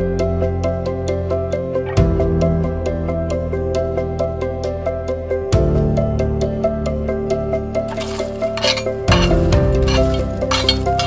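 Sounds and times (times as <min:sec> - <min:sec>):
background music: 0:00.0 - 0:11.0
charcoal clinking and scraping: 0:07.9 - 0:11.0.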